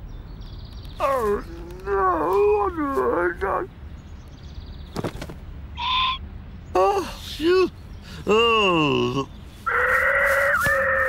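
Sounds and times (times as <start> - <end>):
cartoon voice groaning and wailing: 1.0 - 3.7, 8.3 - 11.0.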